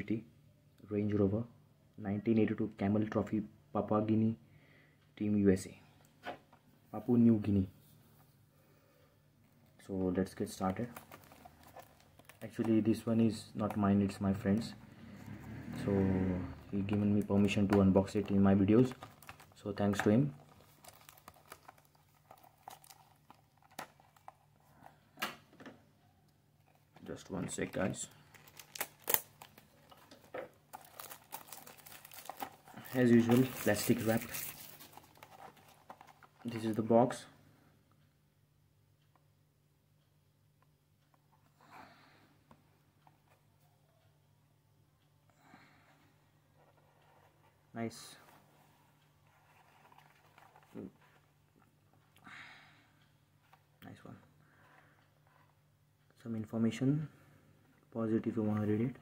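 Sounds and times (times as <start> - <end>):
plastic shrink-wrap crackling: 18.0 - 24.3, 28.0 - 36.6.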